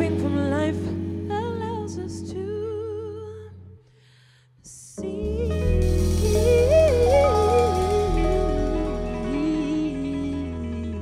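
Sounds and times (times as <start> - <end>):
jazz soul band playing: 0.0 - 2.4, 5.0 - 11.0
woman singing with vibrato: 0.0 - 3.6, 4.7 - 11.0
short hiss: 5.8 - 9.4.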